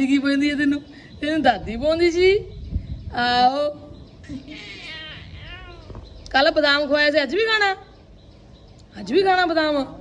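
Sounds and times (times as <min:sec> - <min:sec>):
baby cooing and squealing: 0:04.5 - 0:06.0.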